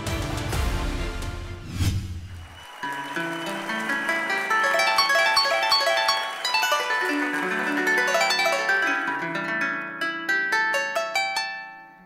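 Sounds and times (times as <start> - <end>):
harp playing fast plucked runs: 2.8 - 11.9.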